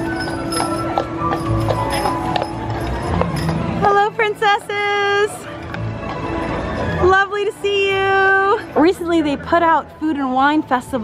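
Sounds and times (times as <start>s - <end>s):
horse hooves clip-clopping on pavement: 0.0s - 4.2s
music playing: 0.0s - 11.0s.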